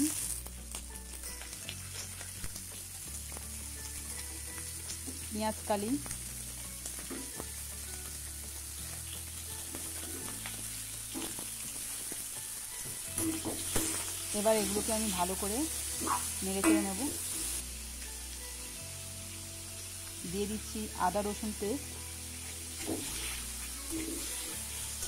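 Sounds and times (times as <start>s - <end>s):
vegetables sizzling in oil: 0.0s - 25.0s.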